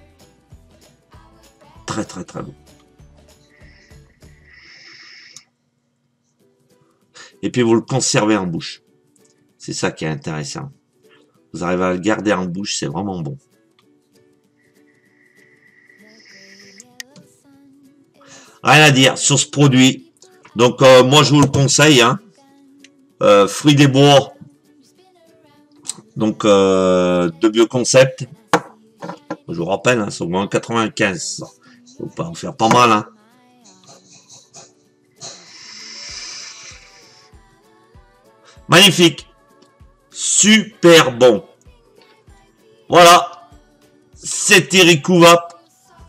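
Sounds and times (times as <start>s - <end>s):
faint music with held notes: 0.0s - 46.0s
breathy exhale of vapour: 3.4s - 5.4s, 18.2s - 18.6s, 35.2s - 37.4s.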